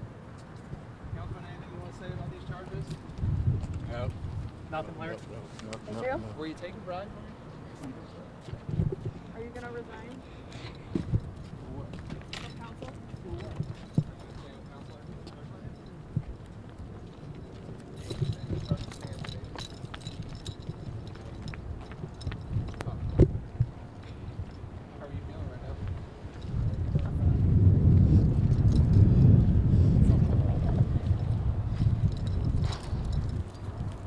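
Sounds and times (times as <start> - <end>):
faint street hum: 0.0 - 34.0
wind buffeting microphone: 0.7 - 5.2, 8.6 - 9.8, 10.8 - 34.0
footsteps on pavement: 2.3 - 4.7, 8.4 - 24.6.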